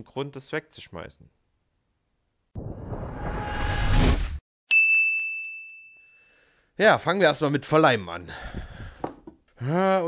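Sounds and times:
high bell-like ding: 4.7s - 6.4s.

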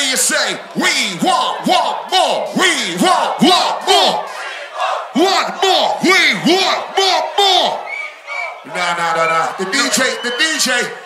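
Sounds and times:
rhythmic shouted chant: 0.7s - 8.7s.

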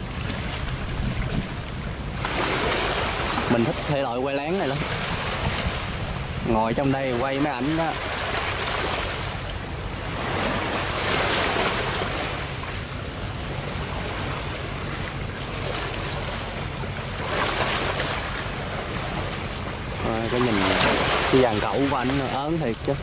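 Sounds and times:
boat engine humming: 0.0s - 23.0s
rushing water: 0.0s - 23.0s
wind: 0.0s - 23.0s.

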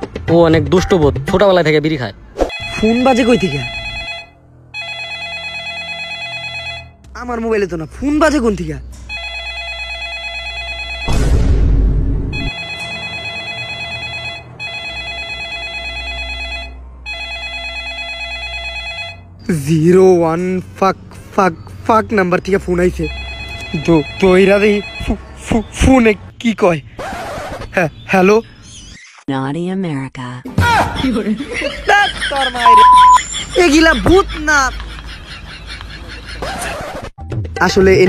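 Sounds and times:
phone ringtone warbling: 2.5s - 7.0s, 9.1s - 11.1s, 12.3s - 19.3s, 23.0s - 25.2s, 32.6s - 33.2s.

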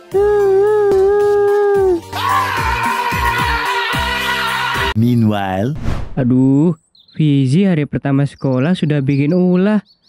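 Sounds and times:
light background music: 0.0s - 4.8s.

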